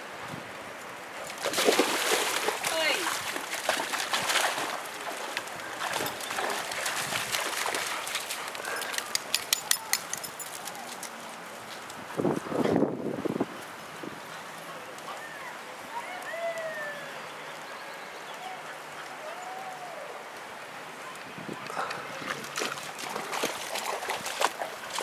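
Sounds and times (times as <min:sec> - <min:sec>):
water sloshing and splashing: 0:01.2 - 0:09.4, 0:22.2 - 0:25.0.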